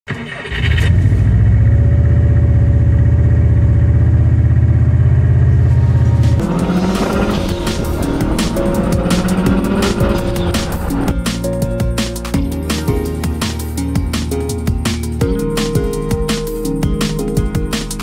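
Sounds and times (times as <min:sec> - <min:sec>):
car engine droning: 0:00.5 - 0:11.5
music with fast drum beat: 0:06.4 - 0:18.0.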